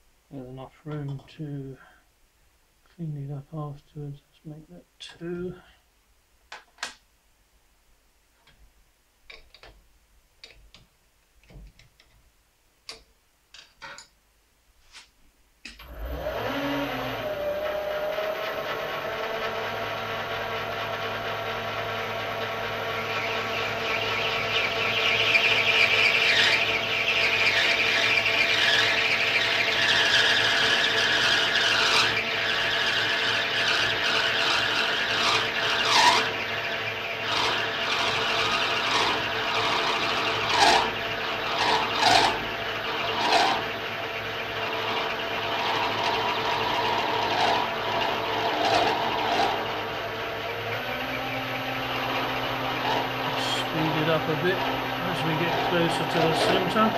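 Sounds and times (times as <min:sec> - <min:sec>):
metal lathe running with gear whine: 0:15.8 - 0:56.9
cutting tool scraping metal: 0:25.8 - 0:36.4, 0:37.2 - 0:43.8, 0:45.6 - 0:50.0, 0:52.7 - 0:56.9.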